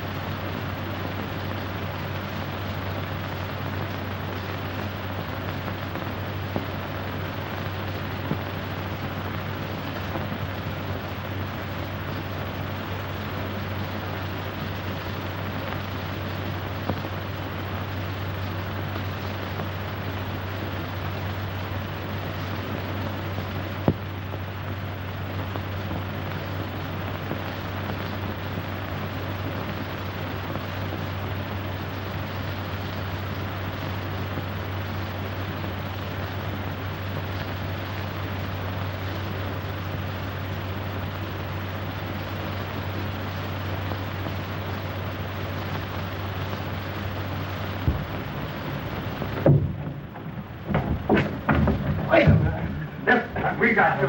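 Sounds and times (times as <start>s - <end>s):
film soundtrack hiss: 0.0s - 54.0s
low hum: 44.6s - 54.0s.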